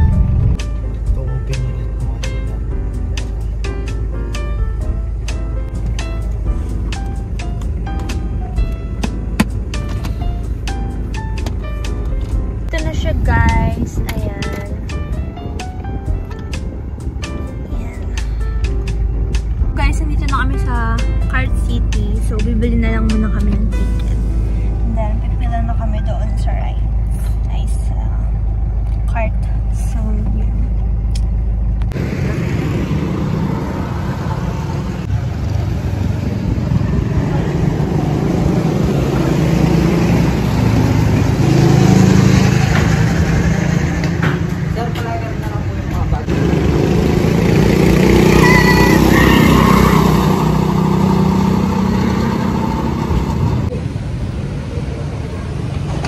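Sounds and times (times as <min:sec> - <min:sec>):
car interior rumble: 0:00.0 - 0:56.0
go-kart engines running: 0:31.9 - 0:56.0.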